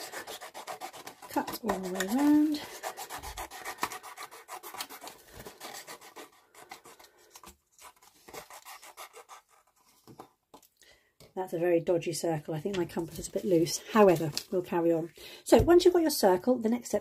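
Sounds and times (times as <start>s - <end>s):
scissors snipping paper: 0.0s - 7.1s.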